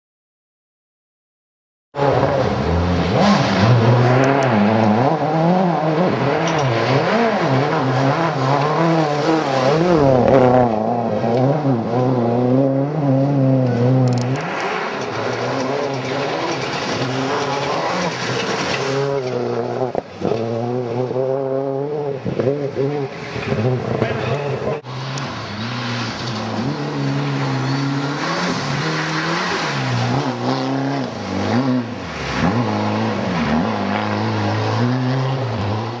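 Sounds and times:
rally car engines at full throttle: 2.0s - 36.0s.

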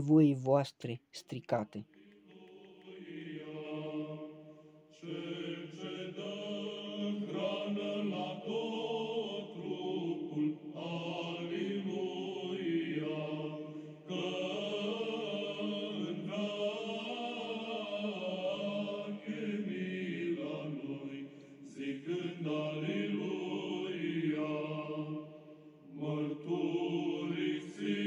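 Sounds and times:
voices singing slow chant: 1.6s - 28.0s.

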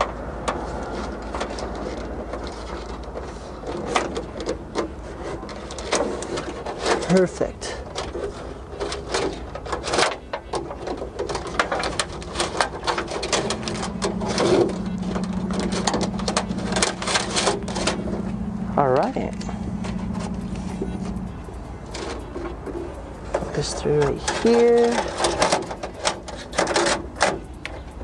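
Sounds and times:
cable clicking and rattling on metal: 0.0s - 28.0s
steady low hum: 0.0s - 28.0s
wavering tone: 12.3s - 28.0s.

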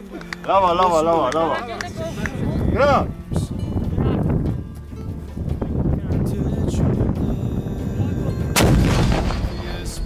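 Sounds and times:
low rumble: 2.4s - 10.0s
heavy weapon blast: 8.6s - 9.9s.

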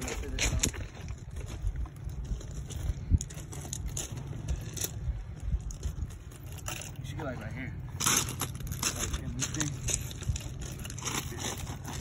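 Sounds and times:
wind rumble on microphone: 0.0s - 7.4s, 8.1s - 12.0s
footsteps crunching on gravel: 0.0s - 12.0s.

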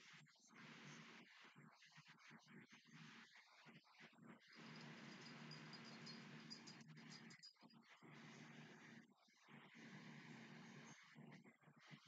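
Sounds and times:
low steady hum: 4.6s - 7.5s
faint high chirping: 4.6s - 7.6s.

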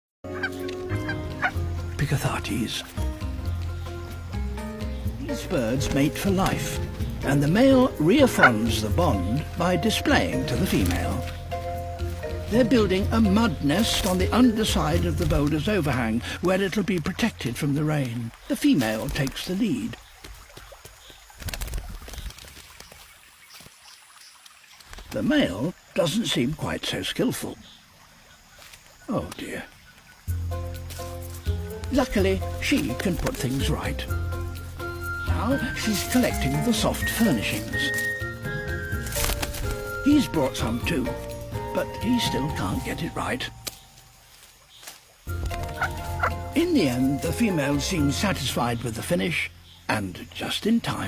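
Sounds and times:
low background music: 0.2s - 18.1s, 30.3s - 44.4s, 45.3s - 50.2s
animal calls: 0.3s - 2.0s, 8.1s - 8.8s, 45.4s - 46.6s.

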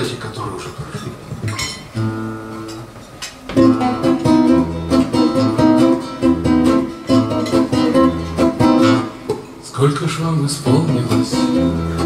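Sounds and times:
strummed guitar accompaniment: 1.4s - 9.6s, 10.5s - 12.0s
classical guitars playing: 1.5s - 9.6s, 10.5s - 12.0s.

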